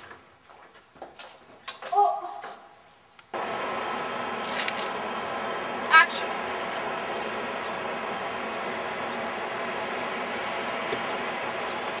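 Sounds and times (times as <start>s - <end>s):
steady vehicle noise: 3.3s - 12.0s.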